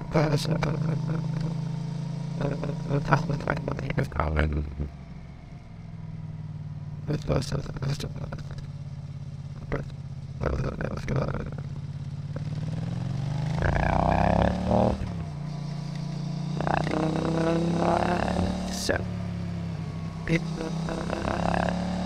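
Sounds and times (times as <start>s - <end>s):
motorcycle engine drone: 0.0s - 22.0s
warbling vocal-like sounds: 13.6s - 15.1s, 20.3s - 22.0s.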